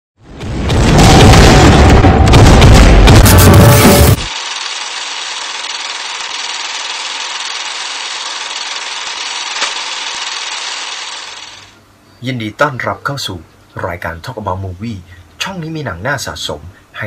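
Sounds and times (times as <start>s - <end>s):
film projector running: 3.6s - 11.8s.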